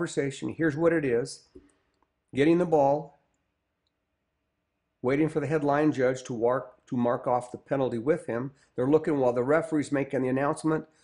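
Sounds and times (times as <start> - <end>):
man narrating: 0.0 - 1.6, 2.3 - 3.2, 5.0 - 11.0.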